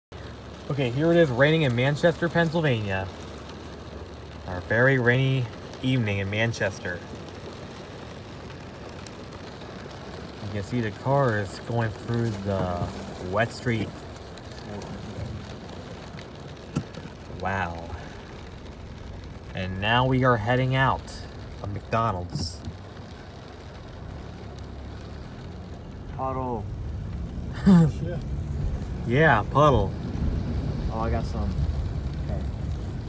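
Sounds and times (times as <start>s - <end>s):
car tyres on wet street: 0.0s - 33.0s
rain hissing: 0.1s - 33.0s.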